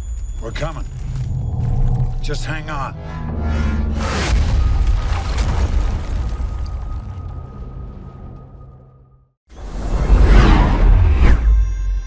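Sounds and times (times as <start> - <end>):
whoosh with bass rumble: 0.9 - 5.3.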